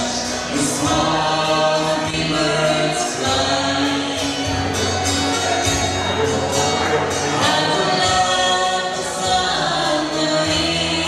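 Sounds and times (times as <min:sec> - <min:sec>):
woman and man singing: 0:00.0 - 0:04.8, 0:06.6 - 0:11.0
acoustic guitar: 0:00.0 - 0:11.0
keyboard: 0:00.0 - 0:11.0.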